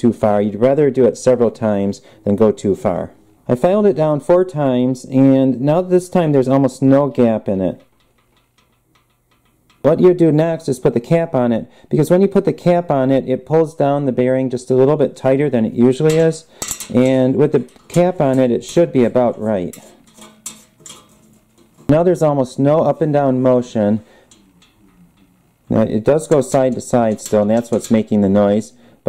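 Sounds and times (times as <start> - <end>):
man speaking: 0.0 - 7.8, 9.8 - 20.0, 21.9 - 28.9
horn valve clicking: 7.6 - 10.7, 16.0 - 28.8
faint metallic valve clicks: 7.7 - 9.9, 24.0 - 25.4.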